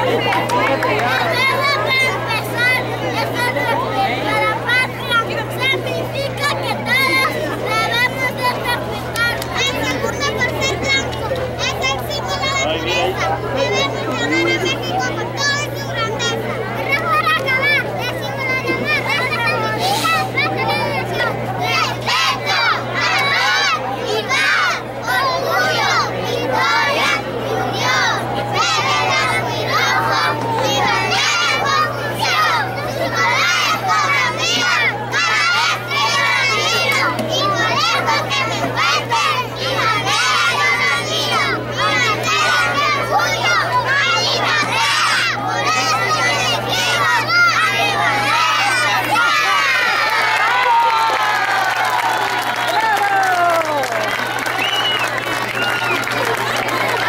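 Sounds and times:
steady low hum: 0:00.0 - 0:57.0
children's voices in chorus: 0:18.8 - 0:57.0.

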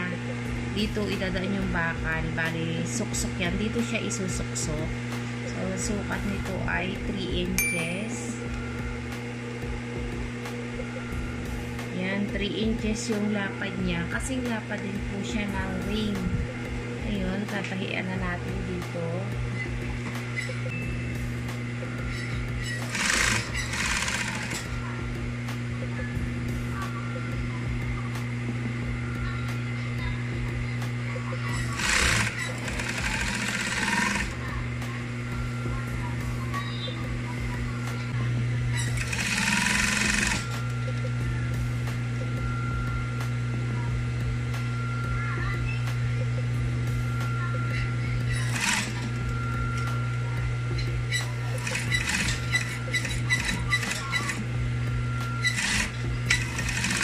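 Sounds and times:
sewing machine motor humming: 0:22.1 - 0:25.1, 0:31.5 - 0:34.9, 0:37.7 - 0:41.1, 0:48.2 - 0:57.0
needle rapid stitching: 0:22.9 - 0:24.6, 0:31.8 - 0:34.4, 0:39.0 - 0:40.5, 0:48.5 - 0:49.1, 0:51.6 - 0:54.4, 0:55.4 - 0:57.0.

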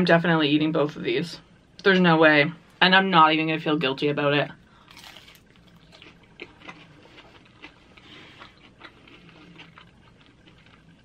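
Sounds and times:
person chewing crisp pizza: 0:04.8 - 0:11.0.

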